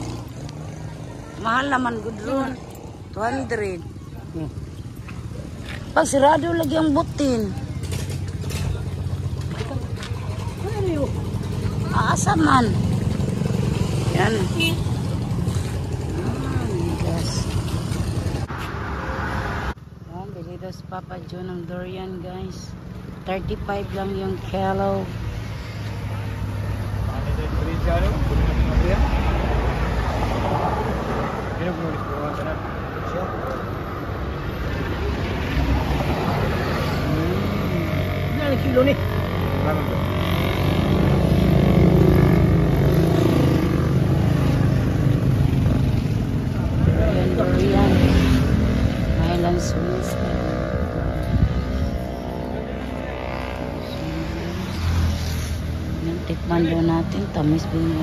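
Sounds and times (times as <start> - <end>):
vehicle engine running: 0.0 - 18.5
vehicle engine rumble: 0.0 - 58.0.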